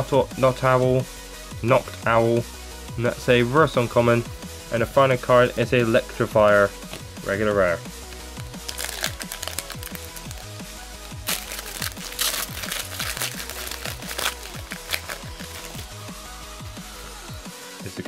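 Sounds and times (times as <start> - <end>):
electronic music with kick drum: 5.4 - 18.0
foil wrapper crinkling: 8.4 - 15.9.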